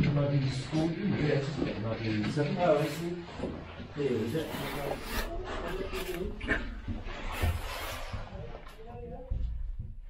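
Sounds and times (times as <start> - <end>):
indistinct voices: 0.0 - 9.6.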